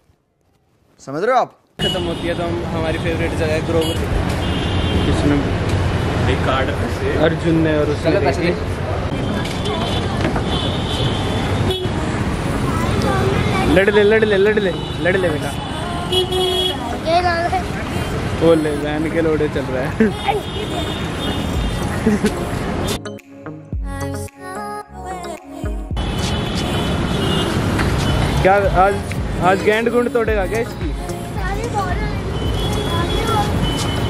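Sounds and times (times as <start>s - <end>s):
street traffic noise: 0.0s - 34.0s
vehicle horn: 1.8s - 2.6s, 3.6s - 5.3s, 9.1s - 12.0s, 13.9s - 17.0s, 20.2s - 21.9s, 26.0s - 28.7s, 32.2s - 34.0s.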